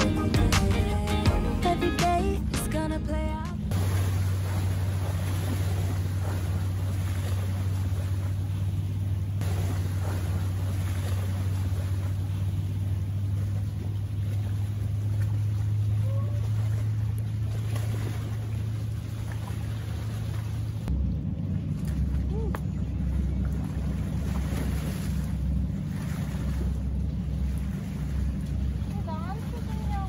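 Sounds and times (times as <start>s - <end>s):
steady low drone: 0.0s - 30.0s.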